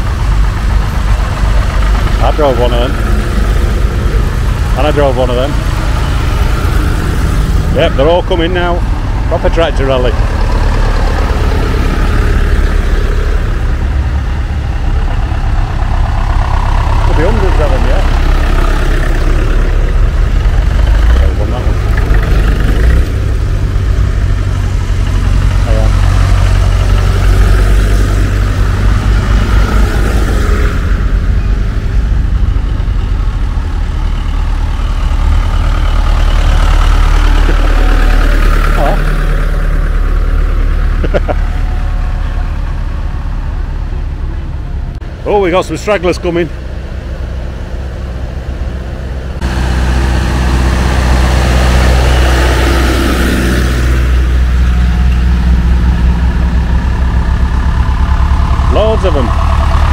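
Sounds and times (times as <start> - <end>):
tractor diesel engines running: 0.0 - 59.9.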